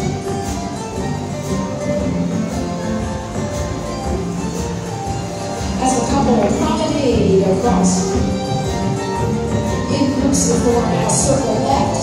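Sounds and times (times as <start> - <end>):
string band dance tune: 0.0 - 12.0.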